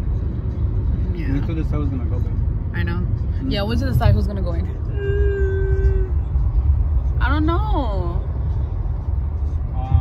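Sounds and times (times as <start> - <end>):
car road rumble: 0.0 - 10.0.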